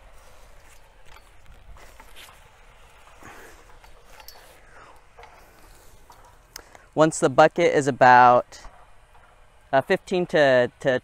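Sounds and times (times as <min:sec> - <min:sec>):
auger scraping into sandy soil: 0:00.0 - 0:04.6.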